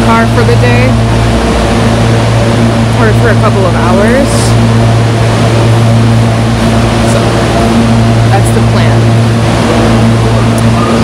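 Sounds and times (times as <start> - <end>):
train engines idling: 0.0 - 11.0.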